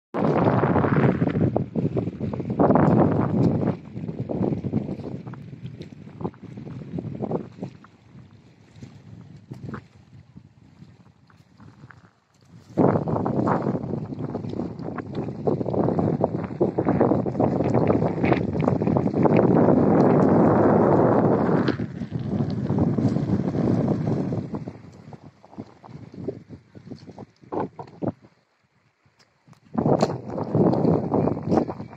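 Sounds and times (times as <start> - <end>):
wind buffeting microphone: 0.1 - 31.9.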